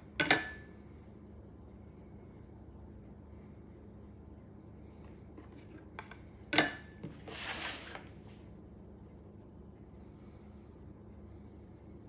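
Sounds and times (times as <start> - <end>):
plastic plate scraping on countertop: 7.0 - 8.1.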